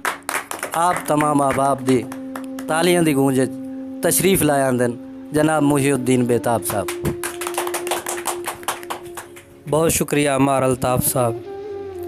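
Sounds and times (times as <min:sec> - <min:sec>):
group clapping: 0:00.0 - 0:02.8, 0:06.6 - 0:09.8
steady low tone: 0:01.2 - 0:07.3.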